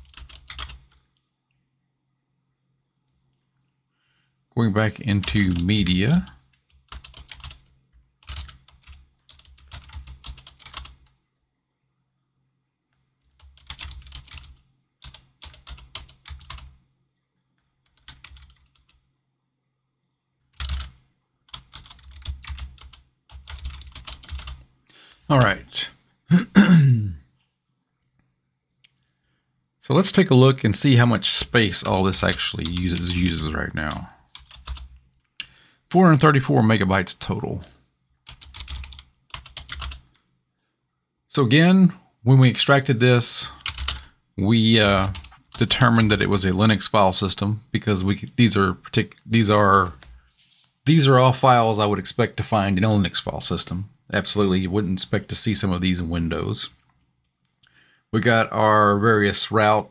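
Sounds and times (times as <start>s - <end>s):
computer keyboard typing: 0.0s - 1.1s, 5.2s - 11.2s, 13.2s - 16.8s, 17.8s - 19.0s, 20.5s - 24.6s, 31.8s - 35.0s, 38.3s - 40.2s, 43.6s - 44.0s, 44.8s - 46.3s.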